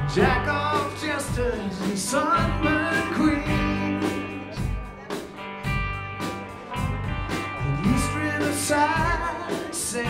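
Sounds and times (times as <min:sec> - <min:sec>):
electric guitars: 0:00.0 - 0:10.0
steady drum beat: 0:00.0 - 0:10.0.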